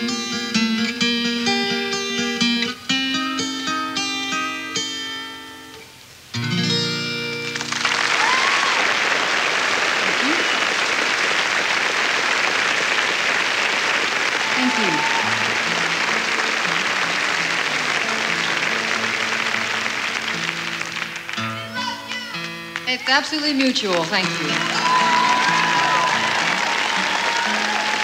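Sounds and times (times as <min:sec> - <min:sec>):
audience applauding and cheering: 0:07.4 - 0:28.0
strummed acoustic guitar chord: 0:15.3 - 0:21.8
whistles from audience: 0:24.6 - 0:28.0.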